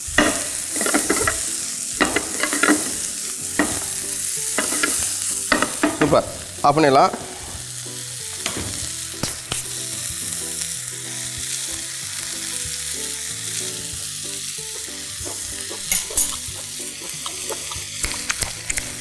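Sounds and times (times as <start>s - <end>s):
vegetables sizzling in a pan: 0.0s - 19.0s
sharp clicks: 18.0s - 19.0s.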